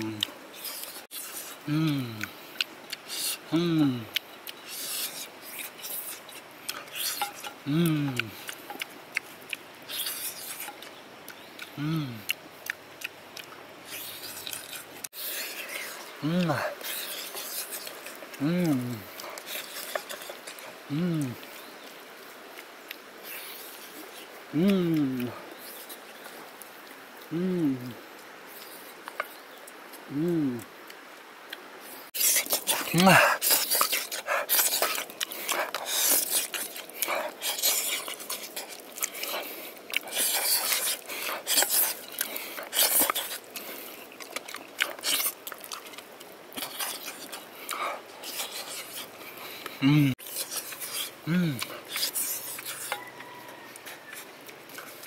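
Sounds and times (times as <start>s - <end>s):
man humming mm of relish: 0.0s - 4.2s, 6.9s - 8.6s, 11.7s - 12.4s, 15.2s - 21.5s, 24.5s - 25.6s, 27.2s - 28.1s, 30.0s - 30.8s, 32.2s - 43.7s, 47.7s - 53.1s
bowl scraping and slurping: 4.6s - 7.6s, 13.9s - 20.8s, 32.2s - 55.0s.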